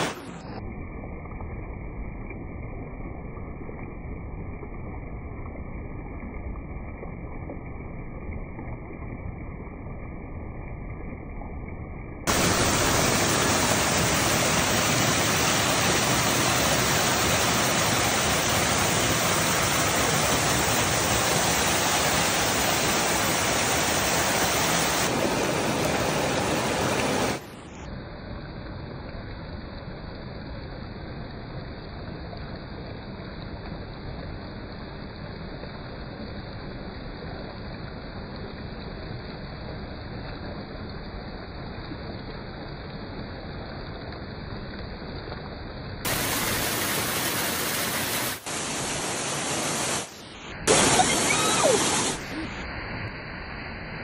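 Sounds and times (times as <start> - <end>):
creek water rushing over rocks: 0.0 - 0.5, 12.3 - 27.8, 46.1 - 52.6.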